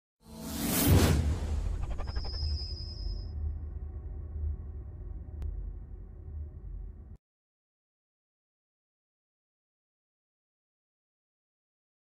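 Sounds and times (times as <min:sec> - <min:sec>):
whoosh: 0:00.3 - 0:07.2
low rumble: 0:00.8 - 0:07.2
high shimmering ring: 0:01.8 - 0:03.6.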